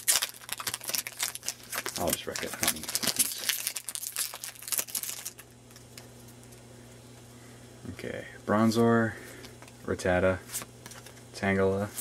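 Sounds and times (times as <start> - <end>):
foil wrapper crinkling and tearing: 0.0 - 6.1
low steady hum: 0.0 - 12.0.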